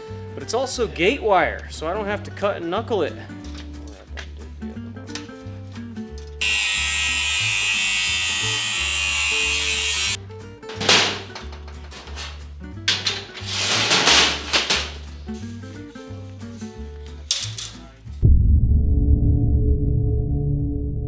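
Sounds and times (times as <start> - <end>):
background music with bass line: 0.0 - 6.4, 9.3 - 13.5, 14.2 - 21.0.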